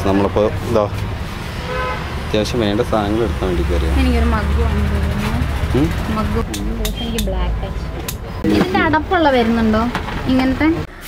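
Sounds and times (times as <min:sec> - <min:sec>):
people talking: 0:02.4 - 0:10.9.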